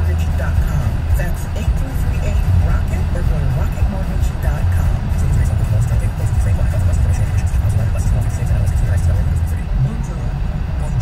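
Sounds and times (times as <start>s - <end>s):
car radio music: 0.0s - 11.0s
road and engine rumble in car: 0.0s - 11.0s
voices on radio: 0.0s - 11.0s.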